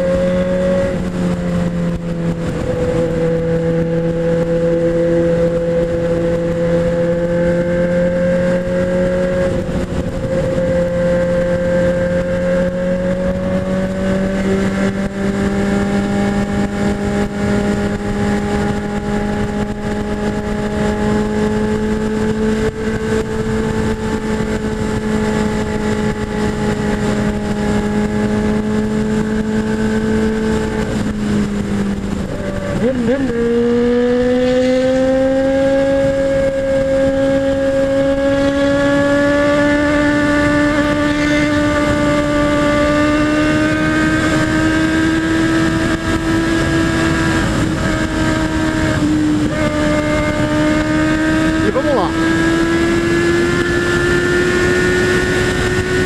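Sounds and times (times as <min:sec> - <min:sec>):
motorcycle engine at speed: 0:00.0 - 0:56.0
wind rushing over camera: 0:00.0 - 0:56.0.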